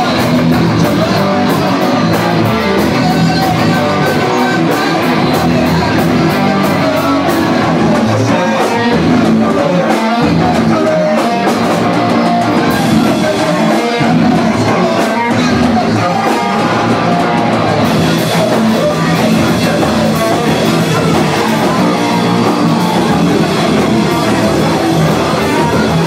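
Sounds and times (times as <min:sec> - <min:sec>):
rock band playing: 0:00.0 - 0:26.0.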